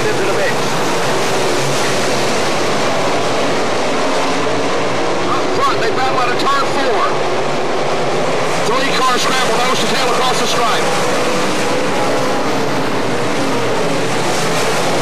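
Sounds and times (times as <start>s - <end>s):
race car engines roaring: 0.0s - 15.0s.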